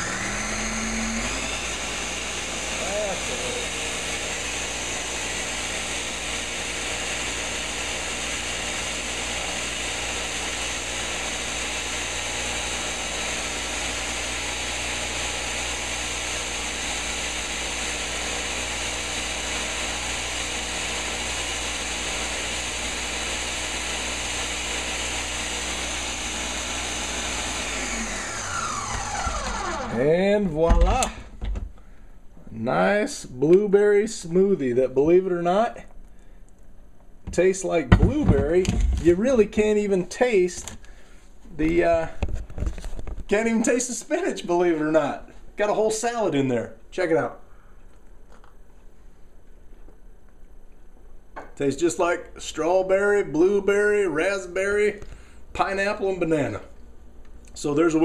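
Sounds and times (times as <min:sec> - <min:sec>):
blender motor whining: 0:00.0 - 0:31.3.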